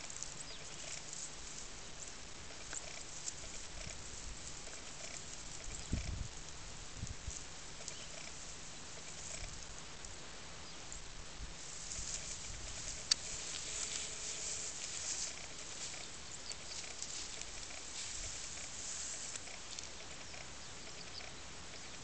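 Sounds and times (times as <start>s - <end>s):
dry grass rustling and crackling: 0.0s - 22.0s.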